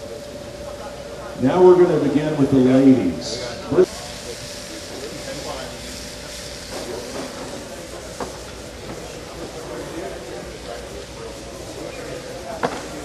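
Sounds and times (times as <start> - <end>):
faint voices: 0.0 - 13.0
grill sizzling: 0.0 - 13.0.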